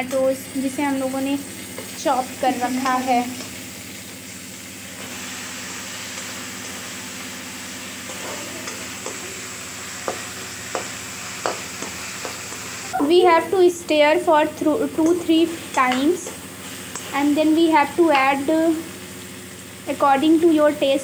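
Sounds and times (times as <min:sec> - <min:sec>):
vegetables sizzling in hot oil: 0:00.0 - 0:21.0
spoon scraping and knocking pan: 0:08.0 - 0:09.4, 0:10.0 - 0:12.8, 0:14.9 - 0:17.2.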